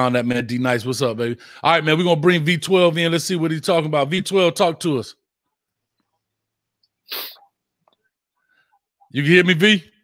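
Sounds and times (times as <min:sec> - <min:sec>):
person sneezing: 0:07.1 - 0:07.5.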